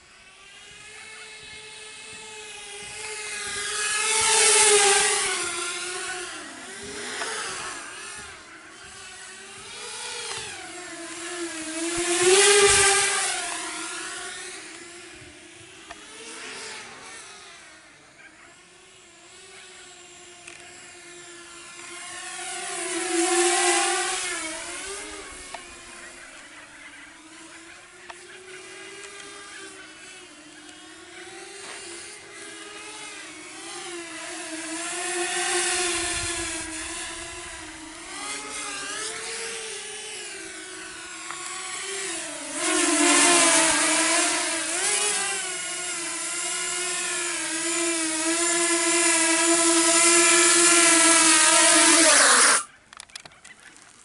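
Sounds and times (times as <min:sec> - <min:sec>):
quadcopter propellers buzzing: 0:00.0 - 0:54.0.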